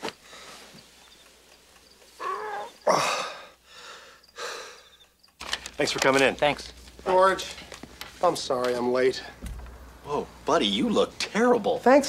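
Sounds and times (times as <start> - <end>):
person moaning: 2.9 - 3.5
person gasping heavily: 2.9 - 4.8.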